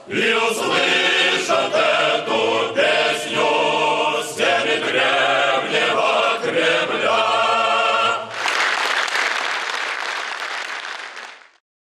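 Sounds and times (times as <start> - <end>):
male choir singing chord: 0.0 - 8.3
audience applause: 8.3 - 11.6.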